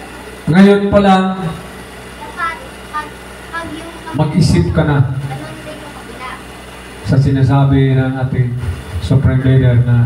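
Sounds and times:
low room hum: 0.0 - 10.0
man speaking into microphone: 0.5 - 1.6, 4.2 - 5.3, 7.0 - 10.0.

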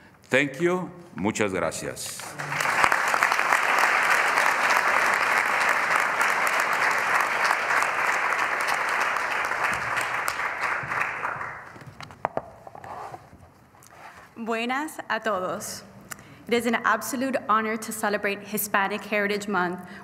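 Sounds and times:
audience applauding: 2.2 - 11.8.

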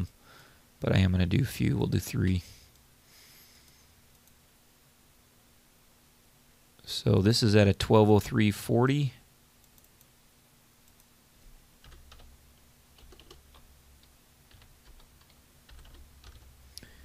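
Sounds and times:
low steady hum: 0.0 - 17.0
keystrokes on computer keyboard: 11.8 - 12.3, 13.0 - 16.5.

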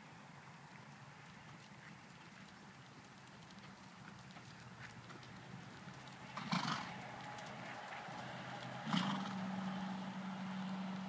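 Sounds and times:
horse hoofbeats on sand: 1.5 - 9.6.

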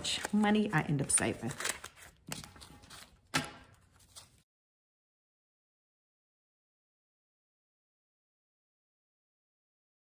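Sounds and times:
paper bills handled: 0.0 - 4.4.

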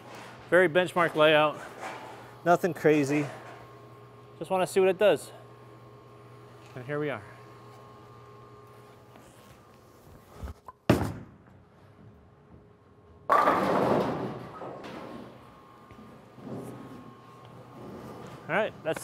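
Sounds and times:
bowling ball thud on lane: 13.3 - 14.8
bowling ball crashing into pins: 13.3 - 15.3.

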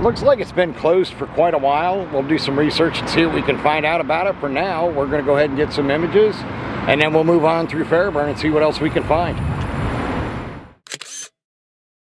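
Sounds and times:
outdoor background noise: 0.0 - 11.3
camera shutter double click: 10.9 - 11.4.

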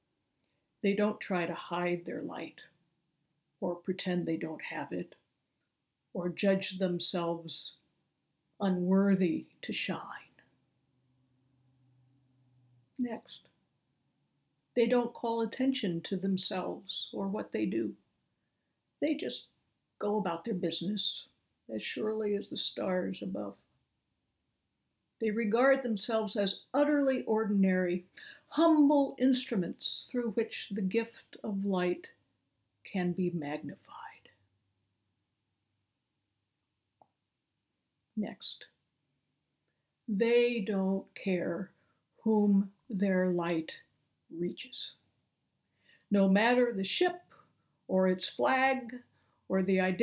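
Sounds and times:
woman speaking: 0.8 - 2.7, 3.6 - 5.2, 6.2 - 7.8, 8.6 - 10.3, 13.0 - 13.5, 14.8 - 18.0, 19.0 - 23.6, 25.2 - 32.2, 32.9 - 34.3, 38.2 - 38.6, 40.1 - 45.0, 46.1 - 47.3, 47.9 - 50.0
person speaking: 13.0 - 13.4, 25.2 - 32.2, 32.9 - 34.3, 40.1 - 45.0, 47.9 - 50.0.

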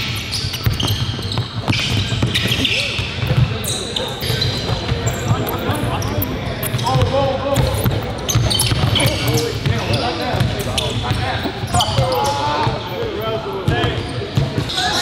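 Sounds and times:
players' voices echoing: 0.0 - 15.0
sneaker squeaks: 0.0 - 15.0.

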